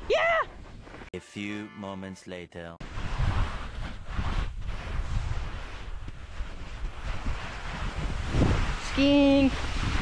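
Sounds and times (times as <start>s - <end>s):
wind buffeting microphone: 2.8s - 10.0s
snow hissing under slider: 2.9s - 10.0s.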